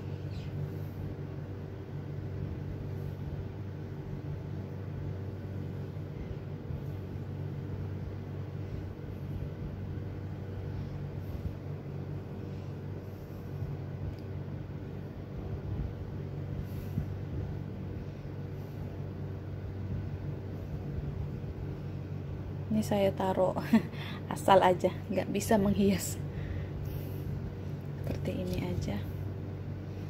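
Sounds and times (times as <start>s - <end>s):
low mechanical hum: 0.0s - 30.0s.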